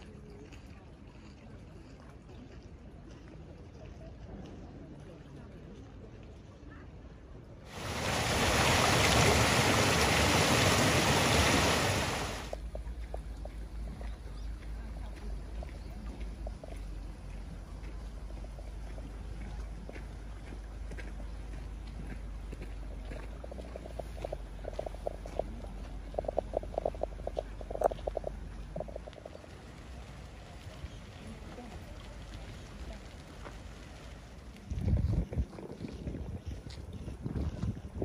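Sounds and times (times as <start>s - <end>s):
faint outdoor background noise: 0.0s - 38.0s
water rushing along stone channel: 7.7s - 14.0s, 15.9s - 35.5s.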